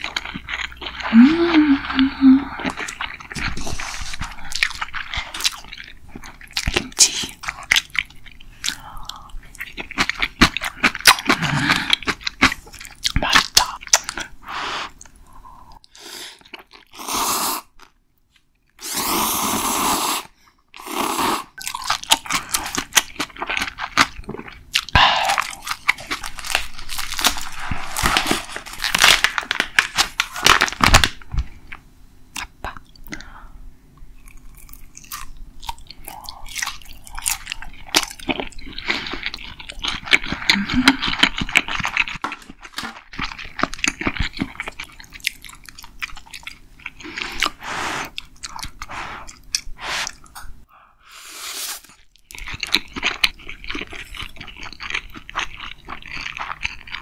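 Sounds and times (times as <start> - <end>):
person chewing crunchy food: 0.0 - 19.8, 20.7 - 33.3, 34.1 - 50.6, 51.5 - 57.0.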